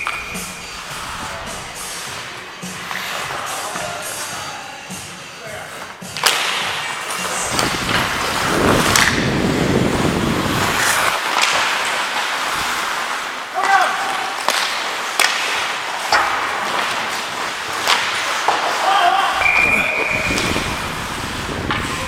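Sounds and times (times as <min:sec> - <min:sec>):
hockey sticks cracking on puck: 0:00.0 - 0:09.5, 0:10.6 - 0:22.0
skate blades scraping ice: 0:00.0 - 0:22.0
person shouting: 0:13.5 - 0:14.2, 0:18.8 - 0:19.4.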